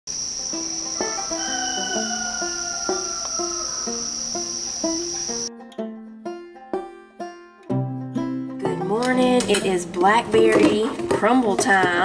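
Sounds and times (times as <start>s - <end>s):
insect chorus: 0.1s - 5.5s
plucked-string music: 0.5s - 12.0s.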